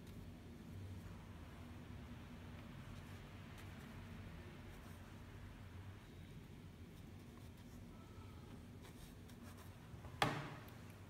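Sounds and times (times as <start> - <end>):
low room hum: 0.0 - 11.0
ink brush scratching on paper: 2.8 - 5.4, 6.8 - 7.9, 8.7 - 9.8.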